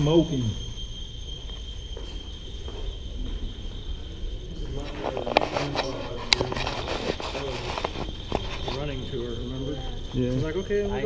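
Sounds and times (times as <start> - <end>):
steady high electronic tone: 0.0 - 11.0.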